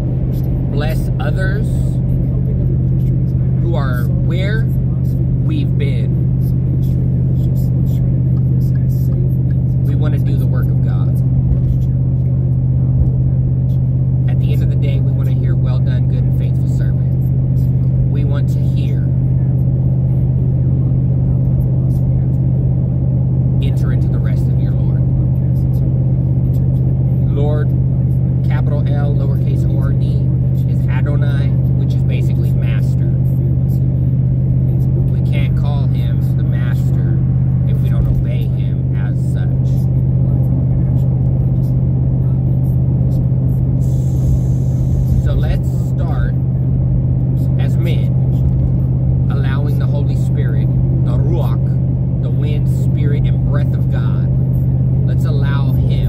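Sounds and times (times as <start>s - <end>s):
vehicle cabin hum: 0.0s - 56.0s
man talking: 0.1s - 22.8s, 23.4s - 56.0s.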